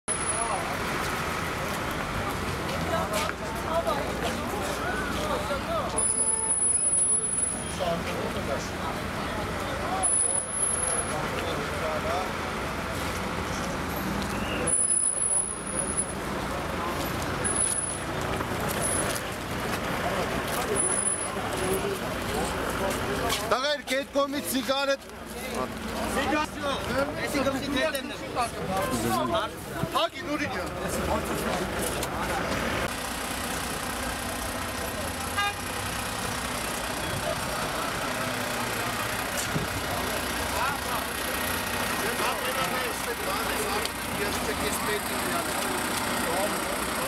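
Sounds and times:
people talking: 0.1 - 32.9, 33.5 - 47.0
vehicle engine rumble: 0.1 - 47.0.

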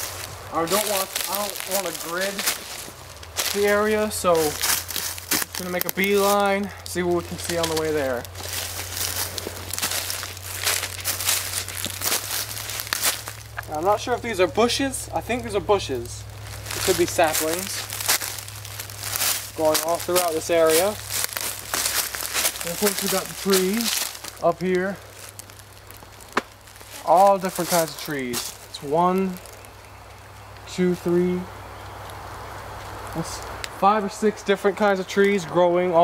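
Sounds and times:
footsteps crunching dry leaves: 0.0 - 36.0.

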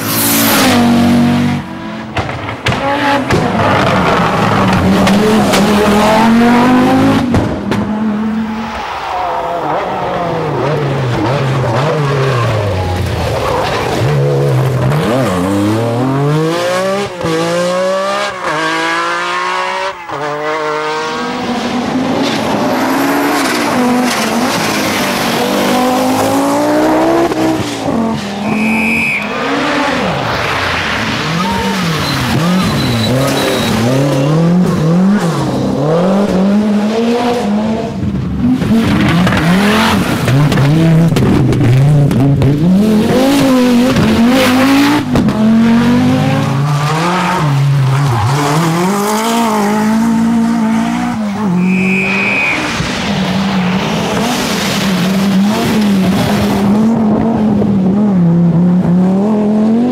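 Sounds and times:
rally car engines revving: 0.0 - 59.9
brief high tone: 51.6 - 52.7.

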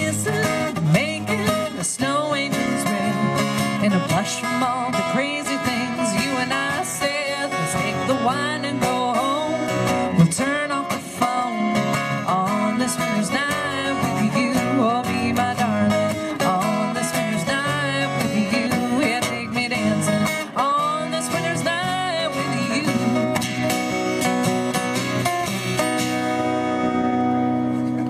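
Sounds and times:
wordless vocal line: 0.0 - 23.7
acoustic guitars strumming: 0.0 - 28.0.

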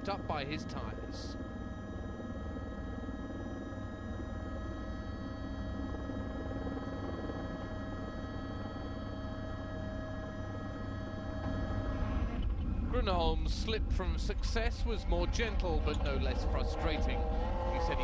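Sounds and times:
helicopter turbine whine: 0.0 - 18.0
low rumble: 11.4 - 18.0.

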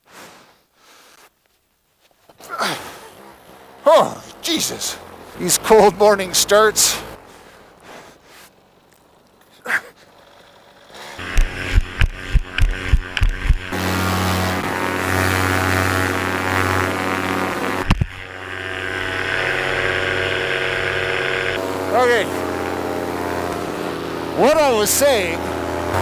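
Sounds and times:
two-stroke engine starting and running: 2.5 - 26.0
sharp engine knock: 11.2 - 13.8.

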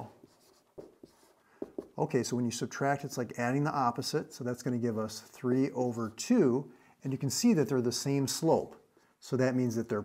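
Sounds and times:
marker scratching on whiteboard: 0.0 - 2.2.

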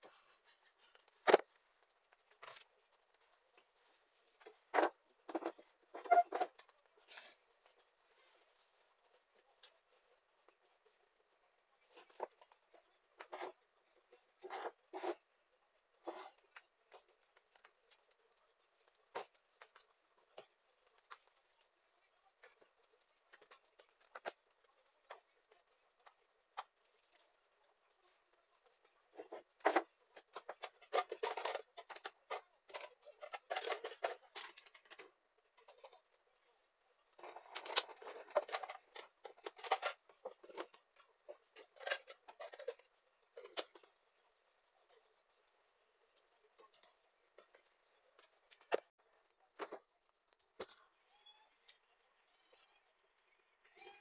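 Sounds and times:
household items clicking and knocking: 0.0 - 50.8.

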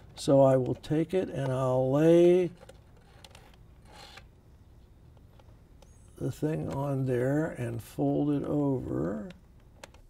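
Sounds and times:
faint small clicks: 9.3 - 10.0.

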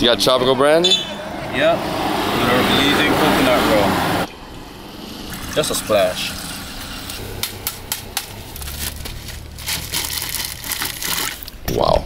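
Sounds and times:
plastic bag crinkling: 8.3 - 11.6
ice cubes clattering: 8.6 - 11.5.

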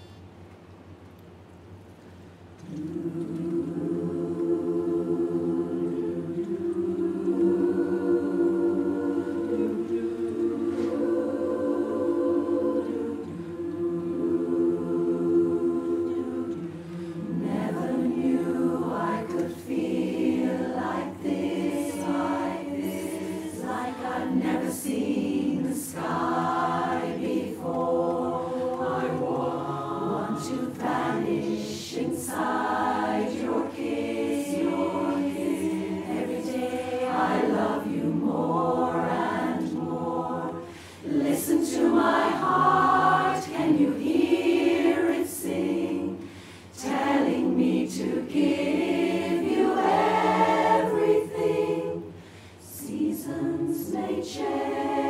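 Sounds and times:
women's chorus singing a cappella: 2.6 - 55.0.

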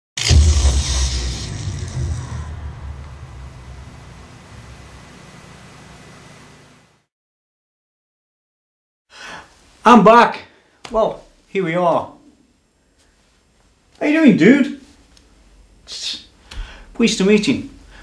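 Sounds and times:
deep ringing hit: 0.2 - 5.3.

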